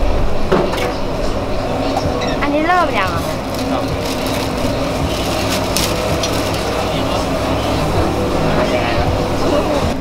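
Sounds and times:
plastic bag crinkling: 3.3s - 6.9s.

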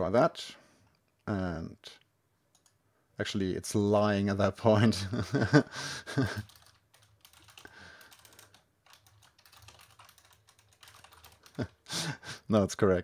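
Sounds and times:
computer keyboard typing: 2.5s - 2.8s, 6.2s - 11.9s.

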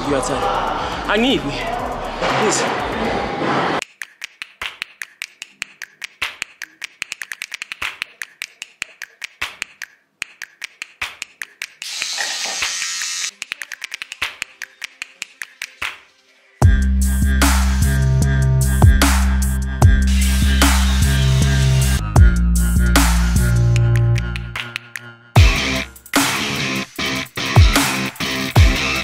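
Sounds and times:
sharp irregular clicks: 3.8s - 11.8s, 13.3s - 15.8s
loud music with heavy beat: 16.6s - 29.0s.

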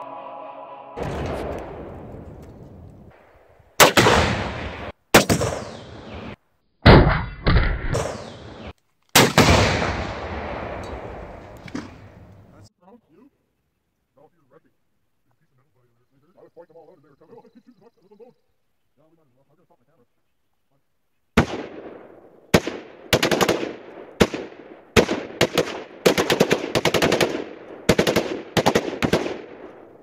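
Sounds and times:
background music: 0.0s - 1.5s
target explosions: 1.0s - 2.9s, 3.8s - 12.2s
gunshots with rumbling echo: 1.0s - 3.1s, 3.8s - 12.4s, 21.4s - 30.0s.

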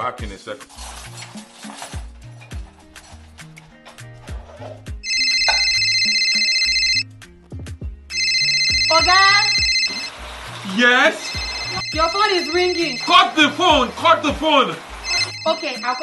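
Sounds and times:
background music with steady beat: 1.4s - 10.2s
electronic phone ringing: 5.0s - 7.1s, 8.1s - 10.2s, 10.8s - 14.4s, 15.0s - 16.0s.

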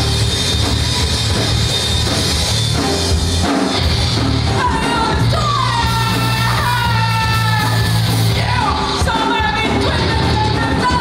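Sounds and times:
bass: 0.0s - 11.0s
drums: 0.0s - 11.0s
electric guitar: 0.0s - 11.0s
singer belting: 4.5s - 11.0s.

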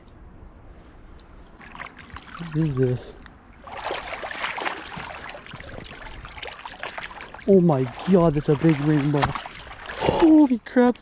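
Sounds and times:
water trickling: 1.2s - 10.9s
boots squelching in mud: 3.6s - 10.5s.

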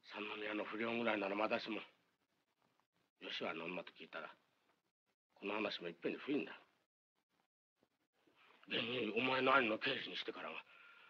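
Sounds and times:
man speaking: 8.7s - 10.7s.

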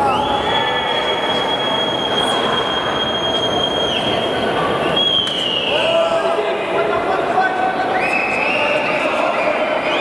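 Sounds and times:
high-pitched whistle: 0.0s - 5.9s
arena crowd noise: 0.0s - 10.0s.

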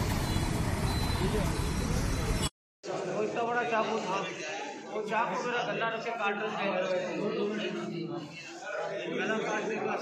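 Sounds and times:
traffic: 0.0s - 2.5s.

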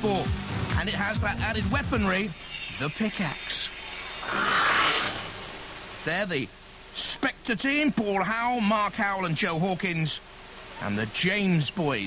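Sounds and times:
rushing hissing noise: 0.0s - 6.4s.

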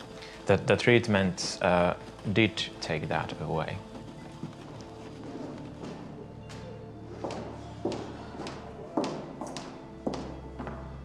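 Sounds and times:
background music with held tones: 0.0s - 11.0s
footsteps on hard floor: 0.4s - 11.0s.

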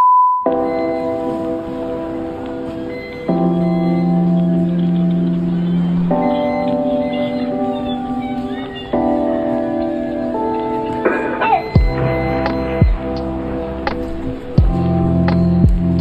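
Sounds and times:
background music of held chords: 0.5s - 16.0s
high test tone: 11.0s - 15.6s.

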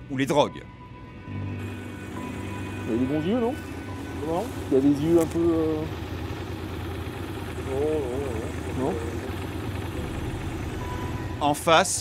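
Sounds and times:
motorcycle engine idling: 1.6s - 12.0s
man speaking: 7.6s - 9.4s.

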